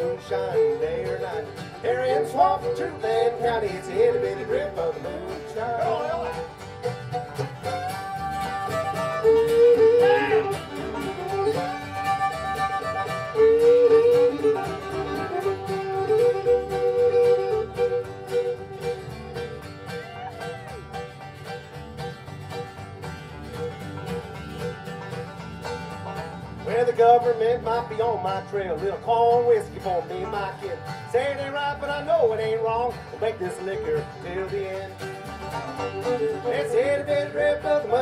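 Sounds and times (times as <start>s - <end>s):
fiddle playing gliding notes: 0.0s - 28.4s, 33.0s - 38.0s
banjo: 0.0s - 38.0s
strummed acoustic guitars: 0.0s - 38.0s
upright bass: 0.0s - 38.0s.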